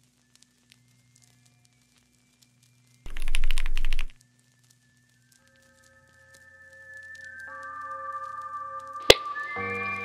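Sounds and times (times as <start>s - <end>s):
rapid clicking: 3.1s - 4.2s.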